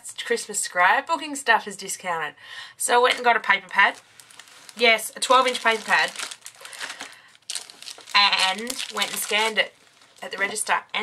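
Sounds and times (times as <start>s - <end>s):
plastic packaging crinkling: 3.1s - 11.0s.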